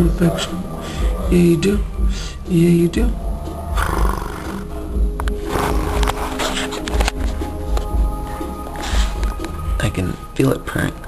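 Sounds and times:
music playing: 0:00.0 - 0:11.0
cat purring: 0:02.8 - 0:07.6.

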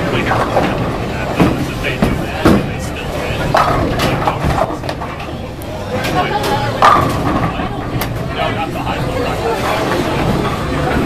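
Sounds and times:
bowling balls knocking pins: 0:00.0 - 0:08.5
voices chattering: 0:00.0 - 0:11.0.

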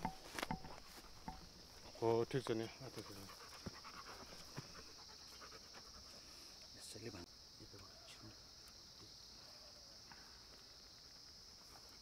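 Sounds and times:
dog panting: 0:02.7 - 0:06.4.

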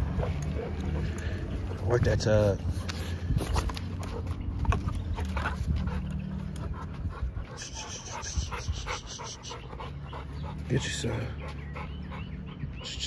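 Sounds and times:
dog panting hard: 0:05.2 - 0:13.0.

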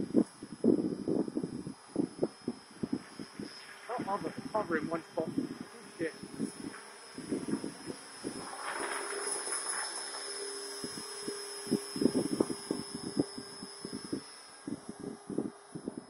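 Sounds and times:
rc helicopter high whine: 0:00.0 - 0:16.0.

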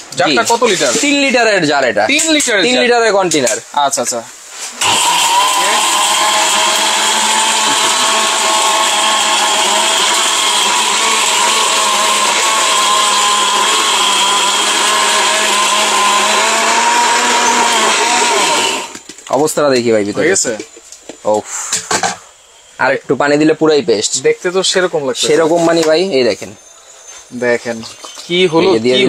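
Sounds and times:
mixer grinder motor grinding: 0:04.8 - 0:19.3.

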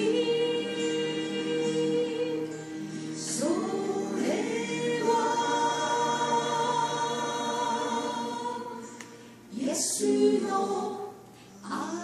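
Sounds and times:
woman singing slow song: 0:00.0 - 0:12.0.

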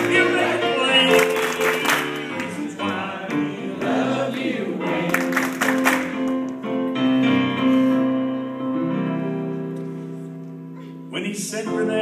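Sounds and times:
voices singing: 0:00.0 - 0:05.6
electric piano playing chords: 0:00.0 - 0:12.0.

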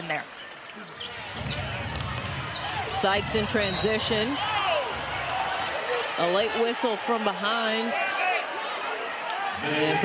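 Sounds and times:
crowd murmur: 0:01.1 - 0:10.0.

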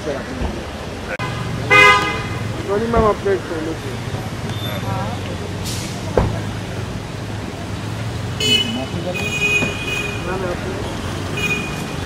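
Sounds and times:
traffic engine hum: 0:00.0 - 0:12.0
vehicle horn honking: 0:01.2 - 0:02.4, 0:08.4 - 0:10.4.

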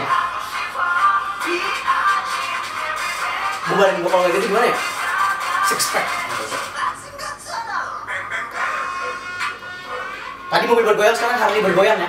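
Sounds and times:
pop song through speaker: 0:00.0 - 0:12.0.

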